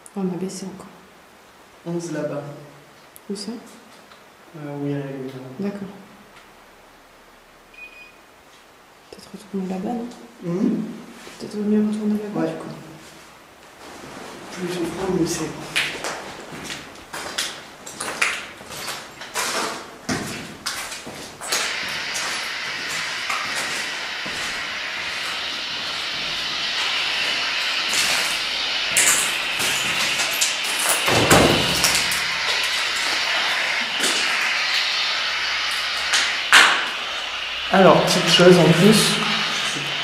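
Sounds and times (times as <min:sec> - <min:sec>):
radio static hiss: 0:08.7 - 0:17.8, 0:20.9 - 0:40.0.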